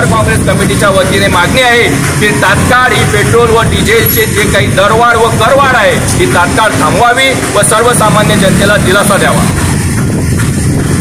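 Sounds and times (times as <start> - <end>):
road traffic din: 0.0 - 11.0.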